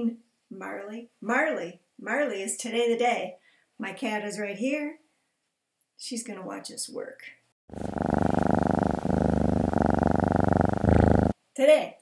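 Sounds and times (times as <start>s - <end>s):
cat purring: 7.7s - 11.4s.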